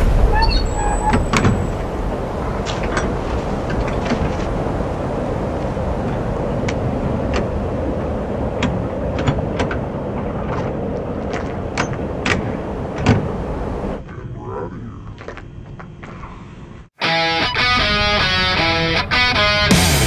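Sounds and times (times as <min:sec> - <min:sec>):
steady rushing background noise: 0:00.0 - 0:16.9.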